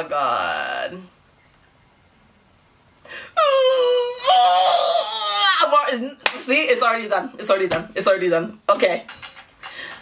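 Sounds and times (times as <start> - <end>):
woman wailing high-pitched: 3.4 - 5.9.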